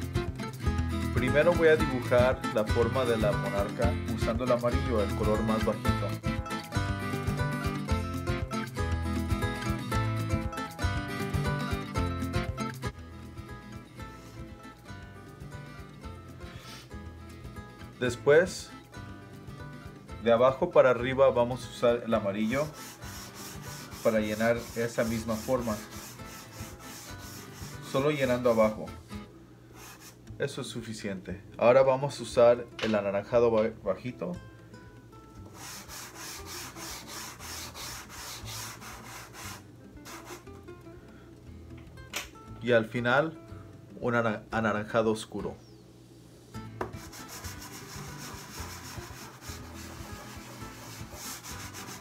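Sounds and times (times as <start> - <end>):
pastel scratching on board: 22.4 - 28.8, 29.8 - 30.2, 35.5 - 40.5, 46.8 - 52.0.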